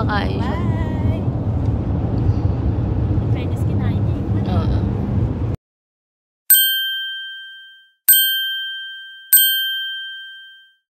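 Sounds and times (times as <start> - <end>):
bell-like dings: 6.5 - 10.9.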